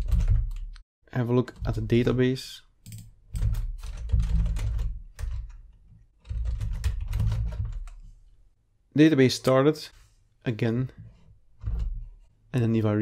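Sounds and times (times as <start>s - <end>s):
keyboard typing: 0.0s - 0.8s, 2.8s - 8.0s.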